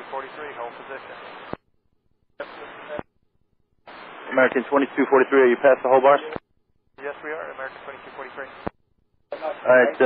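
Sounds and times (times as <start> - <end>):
radio hiss: 0.0 - 1.6, 2.4 - 3.1, 3.9 - 6.4, 7.0 - 10.0.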